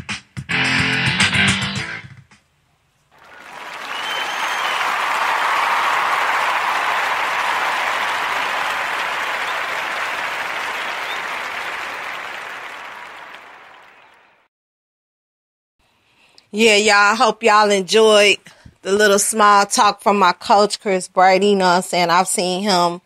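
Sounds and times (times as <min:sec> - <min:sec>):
audience applauding: 0:03.1 - 0:14.5.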